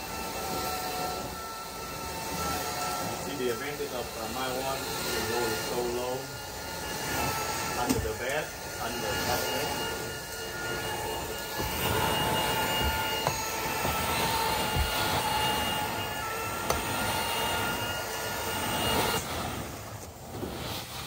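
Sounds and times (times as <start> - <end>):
carpet extraction wand suction roar: 0.0 - 21.0.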